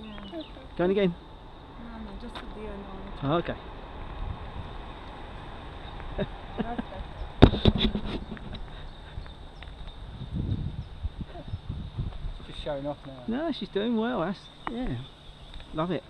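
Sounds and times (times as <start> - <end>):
wind rumbling on microphone: 0.0 - 13.8.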